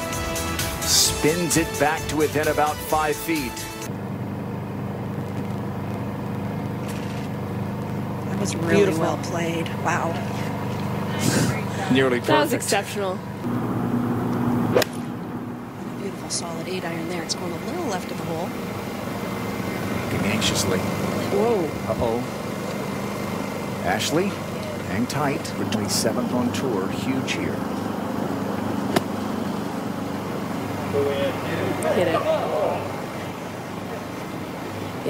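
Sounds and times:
steady low hum: 3.3s - 35.0s
golf club striking ball: 14.7s - 15.1s, 28.9s - 29.2s.

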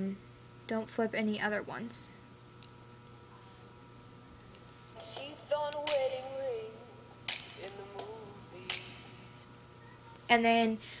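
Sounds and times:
girl singing softly: 5.0s - 9.2s.

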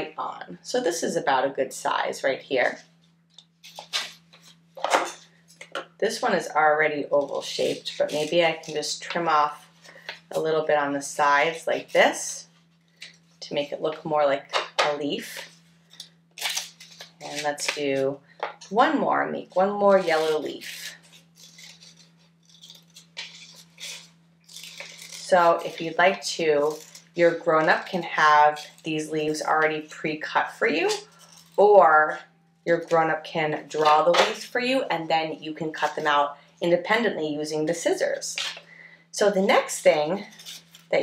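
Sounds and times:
faint steady hum: 0.0s - 41.0s
scissors cutting paper: 7.2s - 9.2s, 15.9s - 17.8s, 19.9s - 29.4s, 40.2s - 41.0s.

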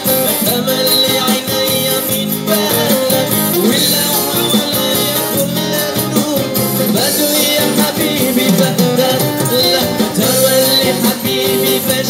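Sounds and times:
guitar accompaniment: 0.0s - 12.0s
man singing into a microphone: 0.0s - 12.0s.

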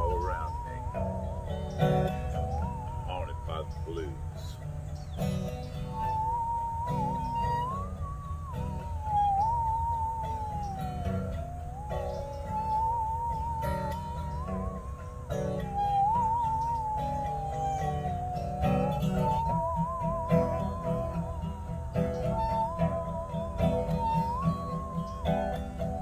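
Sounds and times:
bowed musical saw melody: 0.0s - 26.0s
guitar accompaniment: 0.0s - 26.0s.

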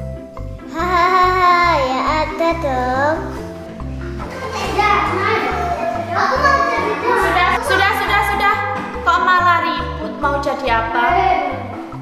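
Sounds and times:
background music with bass line: 0.0s - 12.0s
children chattering and playing: 0.7s - 8.8s.

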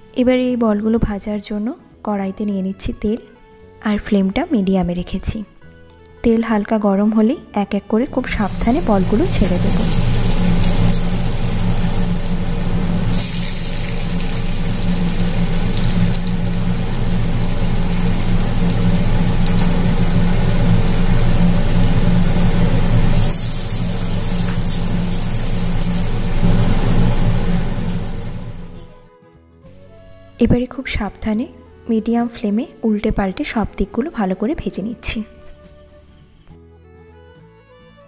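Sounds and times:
food deep-frying in oil: 8.3s - 28.8s.

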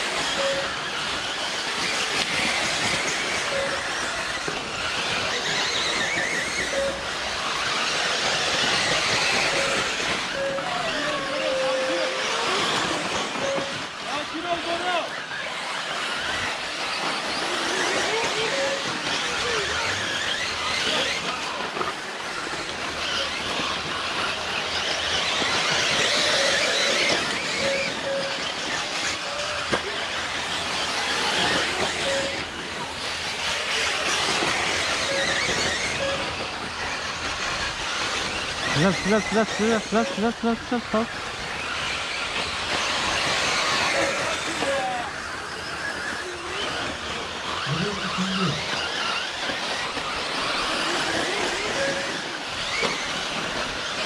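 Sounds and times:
rc car motor whine: 0.0s - 54.0s
short beeps: 0.4s - 0.7s, 3.5s - 3.8s, 6.7s - 7.2s, 9.5s - 10.9s, 13.4s - 13.8s, 27.6s - 28.4s, 36.0s - 36.4s, 38.8s - 41.1s.

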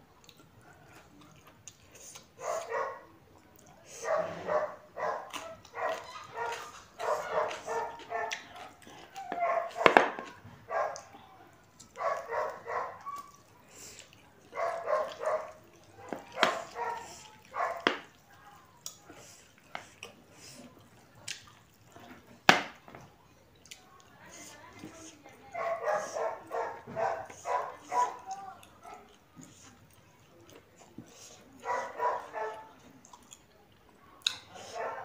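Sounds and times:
dog barking: 2.4s - 3.1s, 4.0s - 11.1s, 11.9s - 13.4s, 14.5s - 18.1s, 25.5s - 29.2s, 31.6s - 32.8s, 34.5s - 35.0s.

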